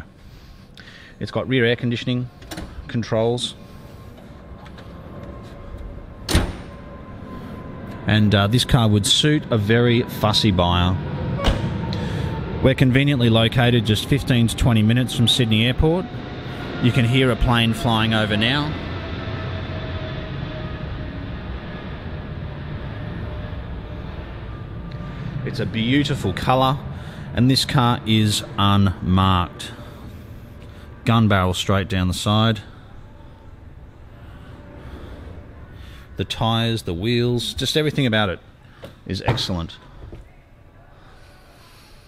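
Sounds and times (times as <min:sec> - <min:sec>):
plane flying over: 0:00.0 - 0:42.0
steady low hum: 0:00.0 - 0:42.0.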